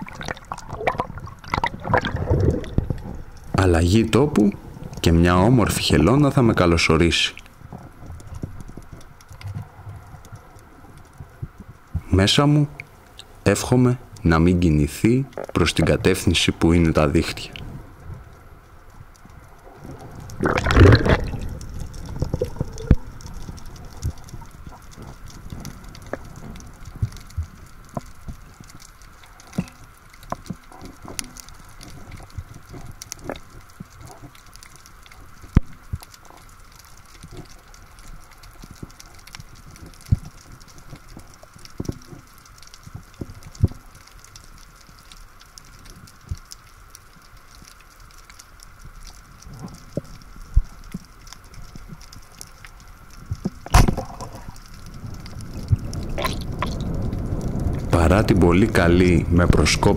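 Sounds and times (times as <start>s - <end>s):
sharp clicks and crackles: 0.0s - 12.1s, 15.1s - 16.5s, 17.4s - 59.9s.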